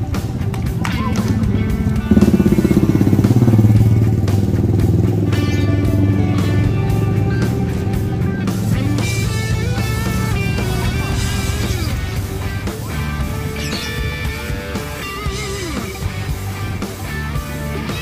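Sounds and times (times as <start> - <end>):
background music: 0.0 - 18.0
scooter engine passing by: 0.8 - 16.2.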